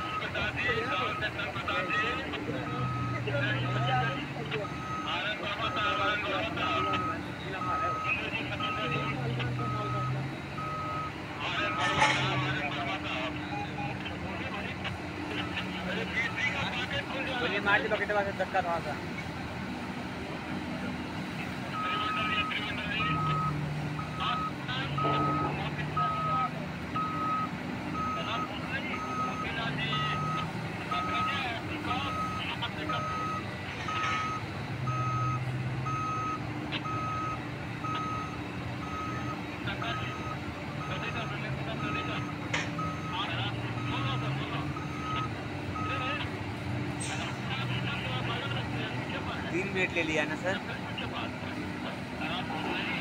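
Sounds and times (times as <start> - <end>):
large diesel engines: 0.0 - 53.0
backup alarm beeping: 6.6 - 12.5, 21.8 - 46.2.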